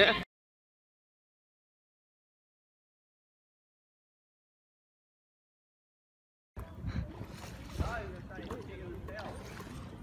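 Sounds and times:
wind rumble on microphone: 6.6s - 10.0s.

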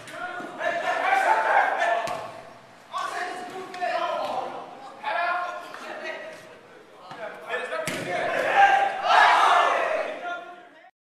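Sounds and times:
players calling and shouting: 0.0s - 10.9s.

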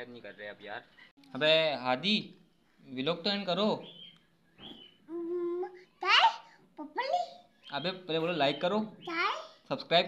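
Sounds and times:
child humming: 5.1s - 5.9s
child vocal sound: 5.1s - 7.0s.

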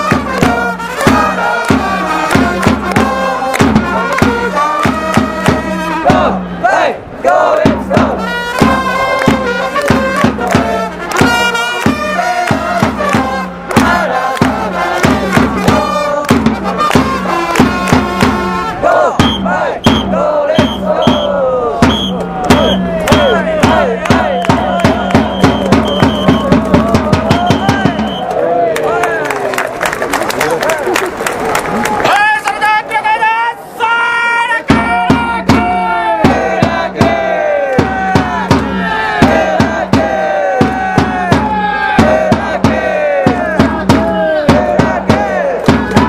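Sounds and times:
steady drumbeats: 0.0s - 6.6s, 7.4s - 28.4s, 34.6s - 46.0s
trumpets playing: 0.0s - 6.8s, 7.4s - 28.3s
fans chanting in unison: 0.0s - 28.8s, 34.5s - 46.0s
crowd noise: 0.0s - 46.0s.

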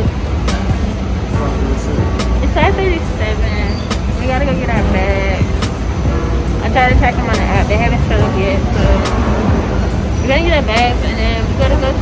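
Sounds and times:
deep rumble: 0.0s - 12.0s
person singing: 0.0s - 12.0s.

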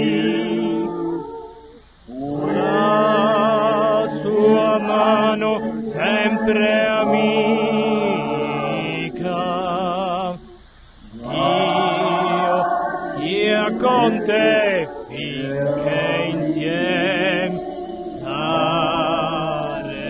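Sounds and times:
person singing a slow hymn: 0.0s - 20.0s.

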